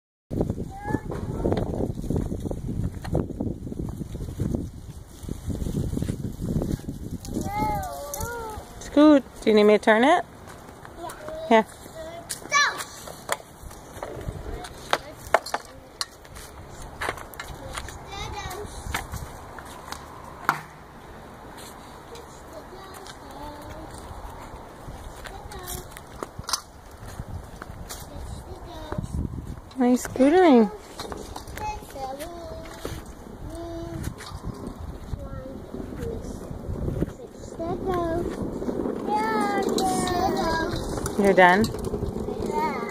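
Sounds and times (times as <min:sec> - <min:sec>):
wind on microphone: 0:00.3 - 0:10.3, 0:13.5 - 0:42.9
small wheels rumbling: 0:00.4 - 0:42.9
scooter knocks on asphalt: 0:20.4 - 0:20.8.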